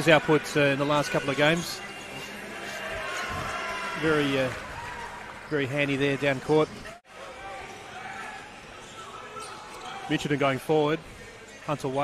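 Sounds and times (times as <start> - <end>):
crowd murmur: 1.8 - 5.0.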